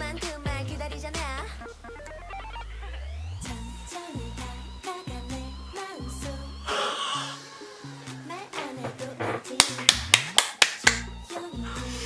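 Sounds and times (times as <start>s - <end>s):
upbeat pop track: 0.0s - 12.0s
hand claps: 8.6s - 11.5s.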